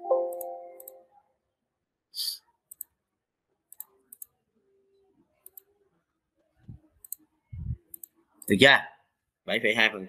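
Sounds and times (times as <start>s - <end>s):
computer mouse buttons clicking: 0.3s - 1.0s, 2.7s - 3.0s, 3.7s - 4.4s, 5.4s - 5.7s, 7.9s - 8.5s
man speaking: 8.5s - 10.0s.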